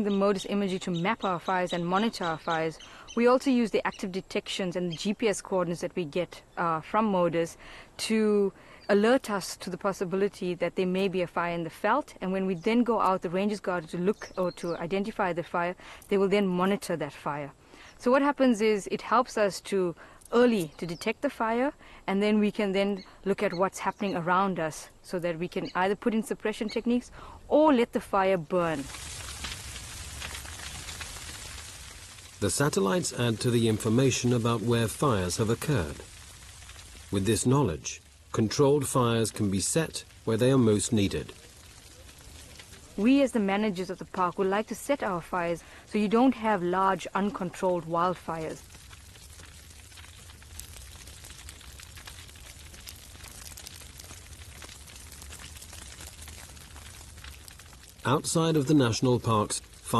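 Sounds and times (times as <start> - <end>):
bush fire crackling: 26.5 - 59.9.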